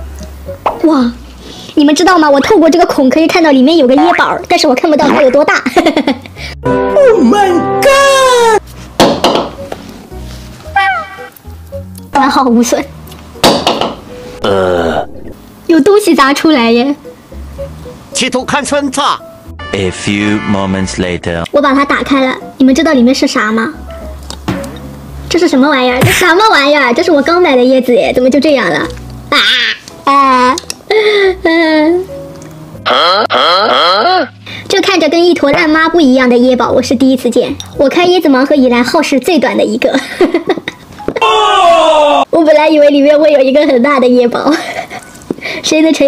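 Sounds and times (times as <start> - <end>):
background music: 0.0 - 46.0
upward sweeping comic sound: 10.8 - 11.3.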